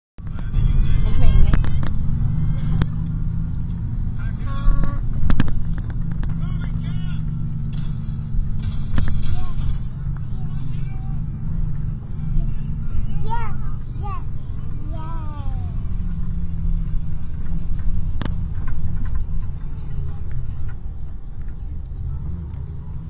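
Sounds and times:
voices talking: 0.2s - 5.2s, 6.2s - 18.0s
vehicle road and engine rumble: 0.2s - 23.0s.

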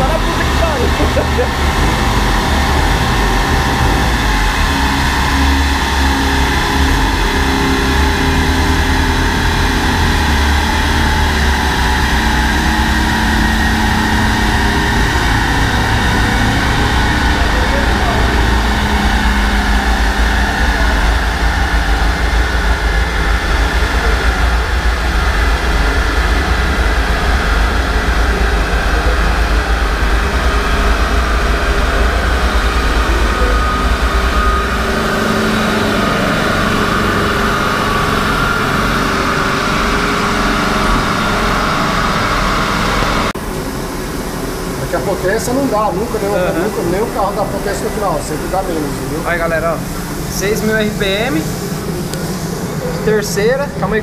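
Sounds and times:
car engine idling: 0.0s - 54.0s
large cooling fan rushing: 0.0s - 54.0s.

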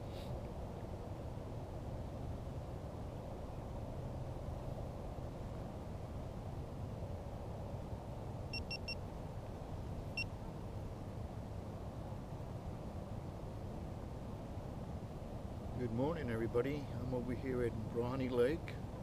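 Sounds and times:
camera electronic beeps: 8.6s - 9.0s.

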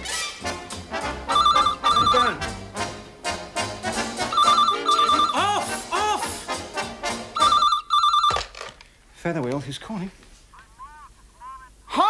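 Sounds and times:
dance-band music: 0.0s - 7.4s
telephone ringing: 1.3s - 2.4s, 4.3s - 5.4s, 7.4s - 8.5s.

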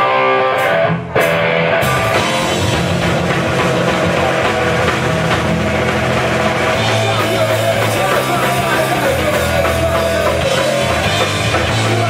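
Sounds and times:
bass guitar: 0.0s - 12.0s
distorted electric guitar: 0.0s - 12.0s
drum kit: 0.0s - 12.0s.

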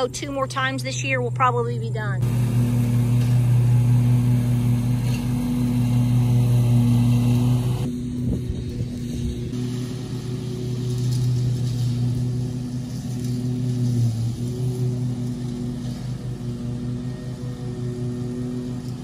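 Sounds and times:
mower engine droning: 0.0s - 19.0s.

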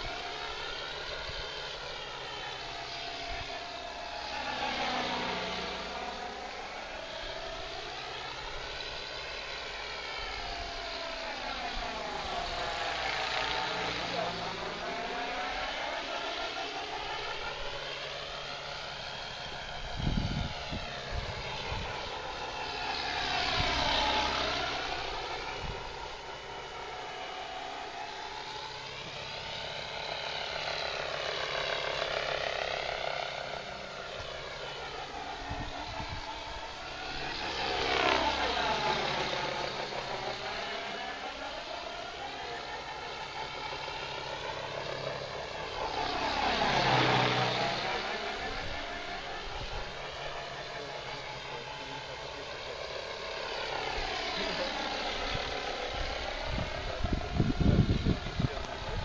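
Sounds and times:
rc helicopter rotor whine: 0.0s - 59.0s.

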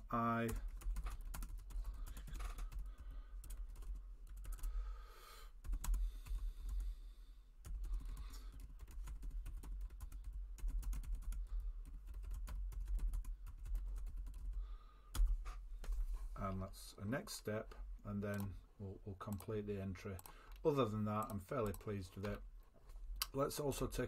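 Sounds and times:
keyboard typing: 0.4s - 4.8s, 5.6s - 6.8s, 7.6s - 15.4s, 19.3s - 22.4s.

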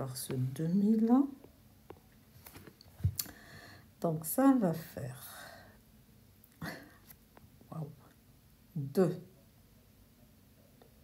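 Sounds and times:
breath: 3.3s - 3.9s.

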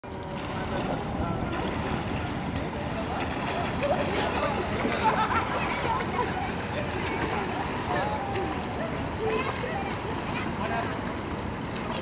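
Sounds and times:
faint voices: 0.1s - 12.0s.

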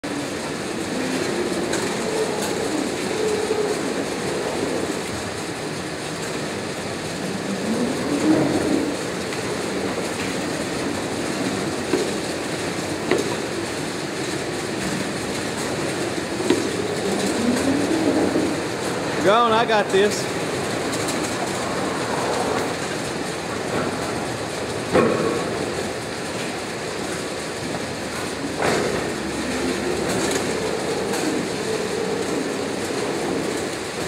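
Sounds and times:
roller conveyor rattling: 0.0s - 34.0s.

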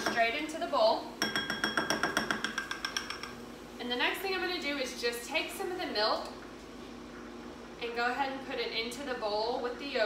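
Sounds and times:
metal spoon clinking on glass bowl: 1.2s - 3.4s.

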